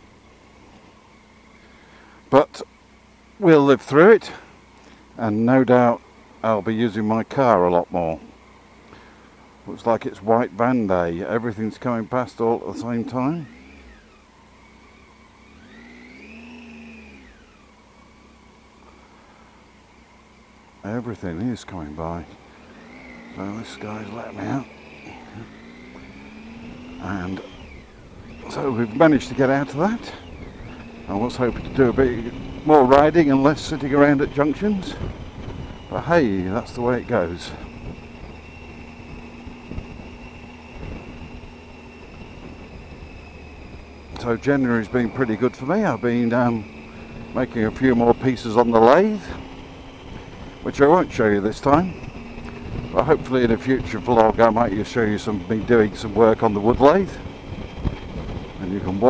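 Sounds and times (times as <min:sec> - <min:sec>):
low steady engine hum: 0:00.0 - 0:59.0
wind and road noise: 0:00.0 - 0:59.0
vehicle engine passing: 0:03.4 - 0:59.0.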